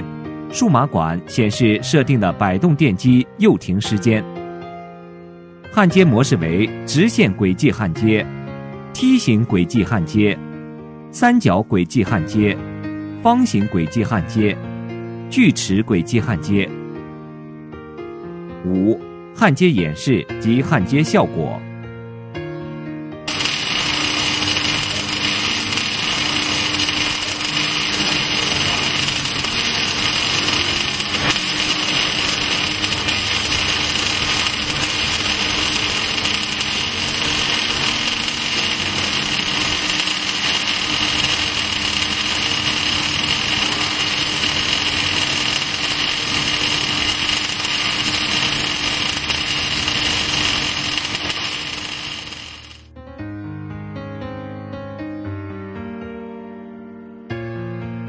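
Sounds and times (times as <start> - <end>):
welding arc hiss: 23.3 - 52.9.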